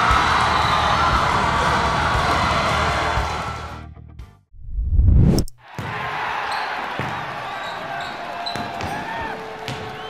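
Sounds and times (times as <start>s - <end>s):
sneakers squeaking on gym floor: 6.5s - 9.0s.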